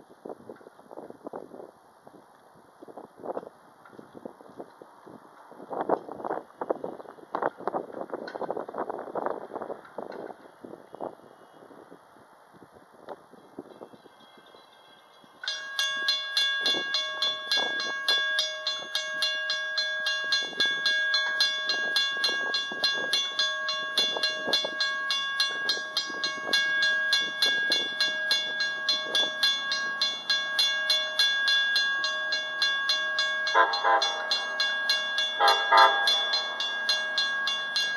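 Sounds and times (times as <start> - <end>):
railroad crossing bells ringing: 13.4 - 37.9.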